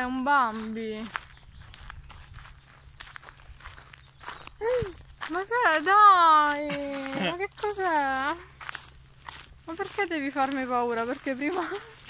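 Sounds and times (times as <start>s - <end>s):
footsteps on gravel: 0.0s - 12.0s
woman exclaiming: 4.6s - 7.5s.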